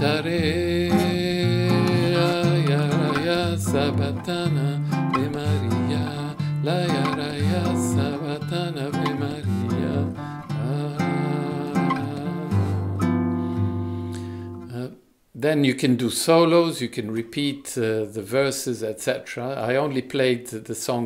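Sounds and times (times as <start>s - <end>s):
classical guitar bossa nova: 0.0s - 14.7s.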